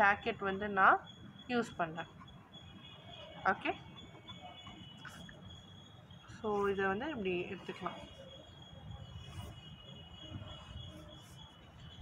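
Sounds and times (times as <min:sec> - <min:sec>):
marker scratching on paper: 0:06.5 - 0:11.8.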